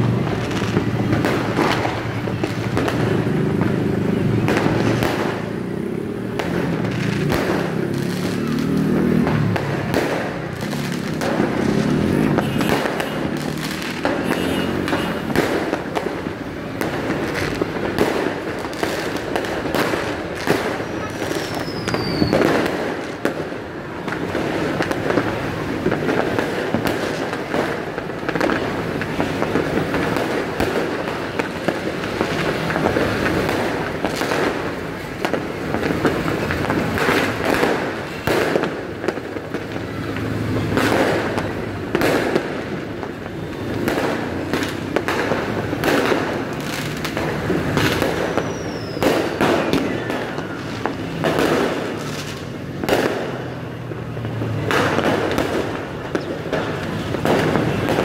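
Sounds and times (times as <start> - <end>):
fireworks rumbling and crackling: 0.0 - 58.0
sharp firework bangs: 0.2 - 3.7, 4.4 - 5.7, 6.3 - 53.6, 54.3 - 58.0
falling firework whistle: 20.6 - 22.7, 47.8 - 51.7.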